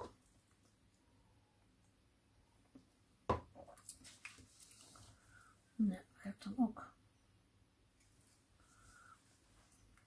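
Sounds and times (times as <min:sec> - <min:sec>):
knock on tabletop: 0:03.3 - 0:03.5
rustling and scratching: 0:03.6 - 0:05.4.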